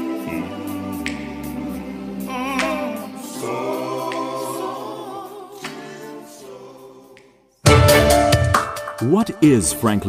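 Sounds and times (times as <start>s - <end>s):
choir singing sustained notes: 0.0s - 8.2s.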